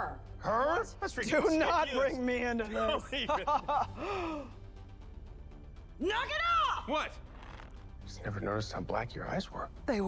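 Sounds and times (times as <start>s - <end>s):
faint low background music: 0.0s - 10.0s
man laughing breathily: 3.7s - 4.6s.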